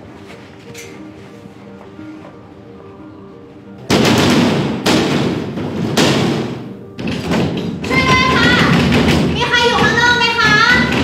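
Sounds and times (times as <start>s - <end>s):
heavy pounding on a door: 3.9s - 11.0s.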